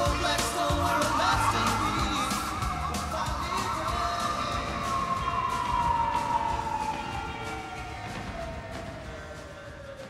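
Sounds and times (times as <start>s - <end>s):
siren wail gliding downward: 0.0s - 10.0s
soundtrack music with steady beat: 0.0s - 10.0s.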